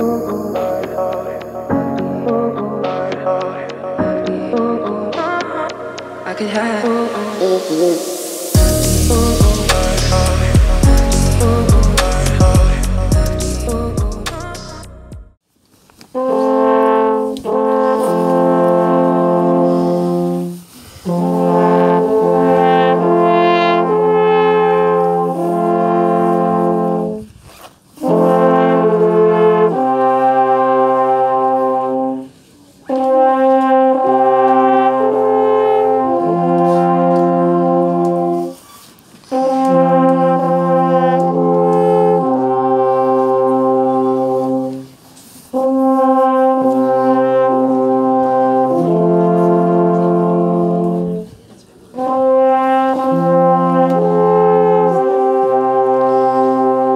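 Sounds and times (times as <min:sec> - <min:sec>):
alphorns playing held chords: 0:00.0 - 0:15.3.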